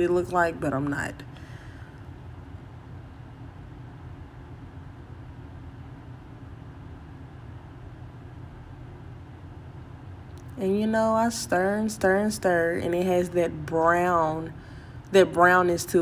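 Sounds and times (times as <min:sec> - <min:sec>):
low hum and rumble: 0:00.0 - 0:16.0.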